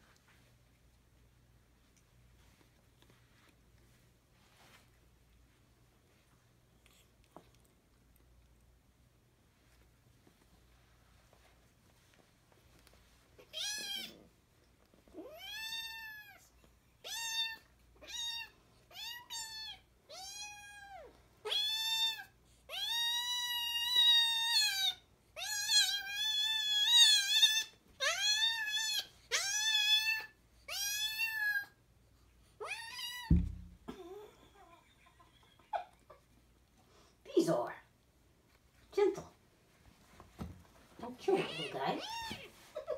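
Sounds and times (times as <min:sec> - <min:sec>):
dull thump: 0:33.3 - 0:33.9.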